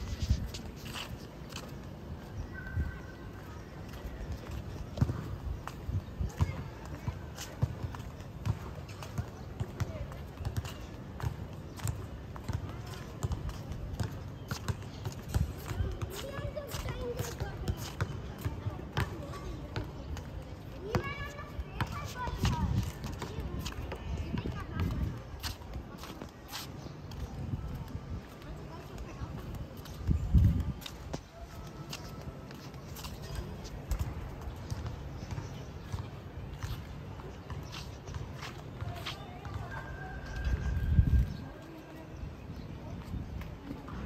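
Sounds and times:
faint voices: 0:00.0 - 0:44.0
footsteps on pavement: 0:00.0 - 0:44.0.

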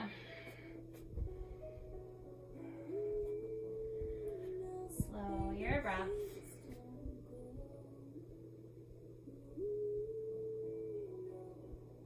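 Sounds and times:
soft slow background music: 0:00.0 - 0:12.0.

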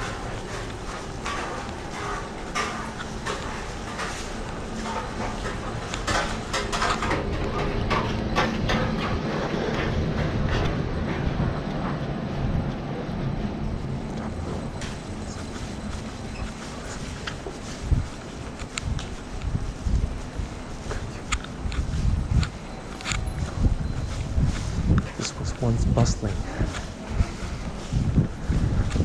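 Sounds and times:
footsteps on pavement: 0:00.0 - 0:29.0.

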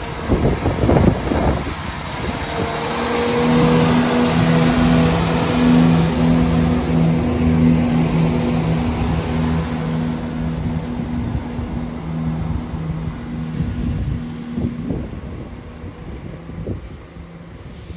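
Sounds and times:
diesel engines humming: 0:00.0 - 0:17.9
train wheels rumbling on rails: 0:00.0 - 0:17.9.

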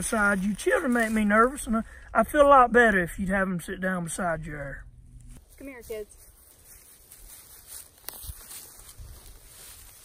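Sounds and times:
low rumble: 0:01.7 - 0:05.4.

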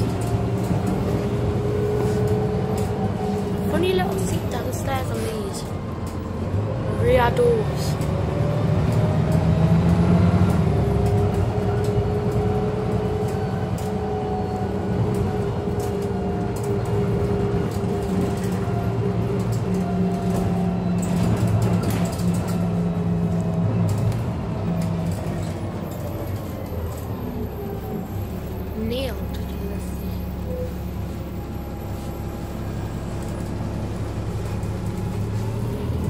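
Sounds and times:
bus engine drone: 0:00.0 - 0:36.0.

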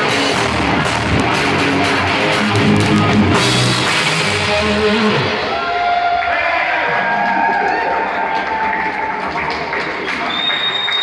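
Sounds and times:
rock band playing: 0:00.0 - 0:05.7.

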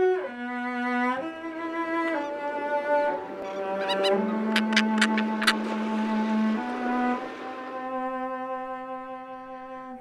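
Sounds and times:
bowed string melody: 0:00.0 - 0:10.0.

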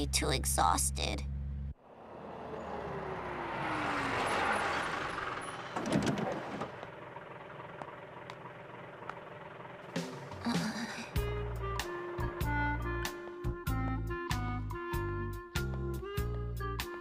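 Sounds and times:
bus engine: 0:00.0 - 0:17.0.

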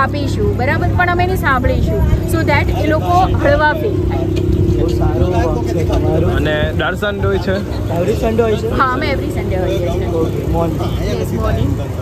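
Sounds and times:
woman speaking: 0:00.0 - 0:04.3
constant hum: 0:00.0 - 0:12.0.

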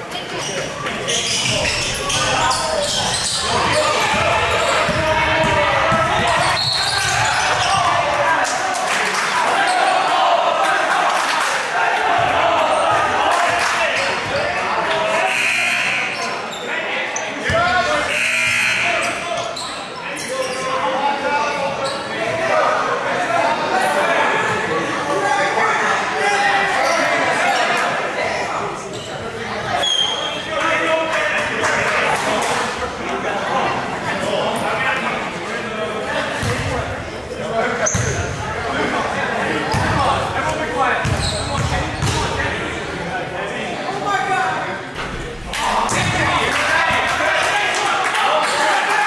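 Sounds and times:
voices calling out in gym: 0:00.0 - 0:49.0.

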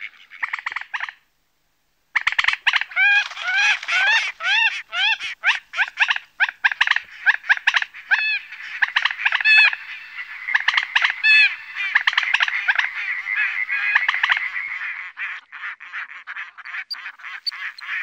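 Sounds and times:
birds calling nasal calls: 0:02.2 - 0:18.0.

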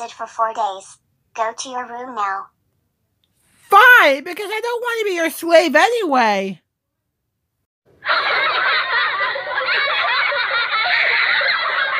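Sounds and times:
laughter track: 0:08.0 - 0:11.9.

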